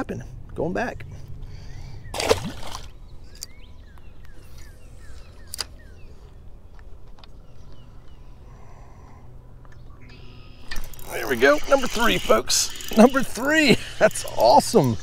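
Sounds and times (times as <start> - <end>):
fish splashing into water: 2.1 - 3.0.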